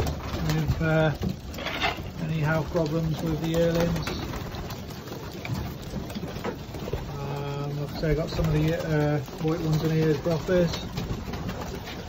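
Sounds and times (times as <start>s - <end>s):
birds shuffling about: 0.0s - 12.0s
pigeon wings flapping: 0.0s - 12.0s.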